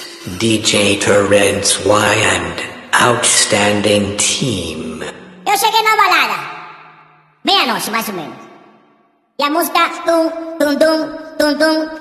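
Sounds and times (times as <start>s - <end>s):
reverberant vocal samples: 0.0s - 12.0s.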